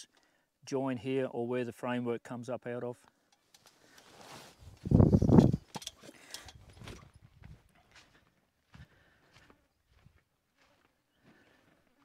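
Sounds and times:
camera handling rumble: 3.6s - 7.1s.

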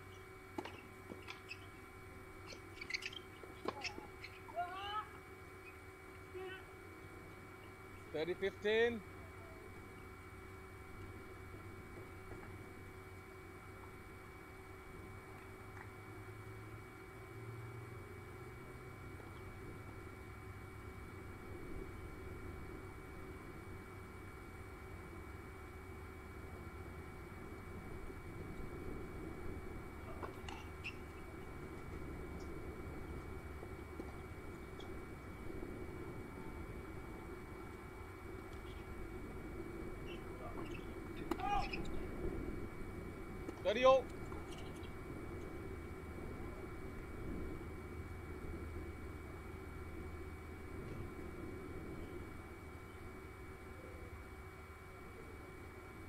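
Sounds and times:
low background hum: 0.0s - 56.0s
short voiced call: 41.4s - 42.0s.

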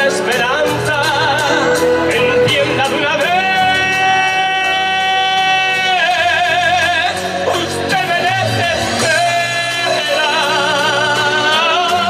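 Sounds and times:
instrumental accompaniment: 0.0s - 12.0s
man singing long high note: 0.0s - 12.0s.

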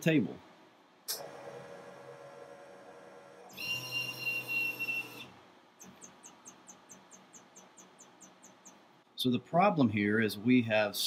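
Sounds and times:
stepper motors whining: 3.5s - 5.3s.

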